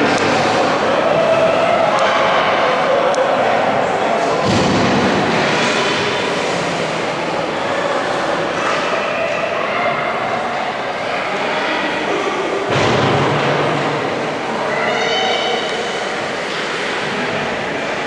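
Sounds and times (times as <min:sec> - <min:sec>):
hockey play on ice: 0:00.0 - 0:10.2, 0:11.4 - 0:18.0
spectators' voices: 0:00.0 - 0:18.0.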